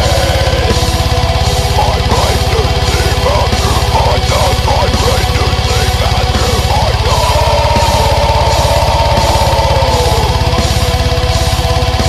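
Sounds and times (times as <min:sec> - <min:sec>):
distorted electric guitar: 0:00.0 - 0:12.0
rapid low-end pulse: 0:00.0 - 0:12.0.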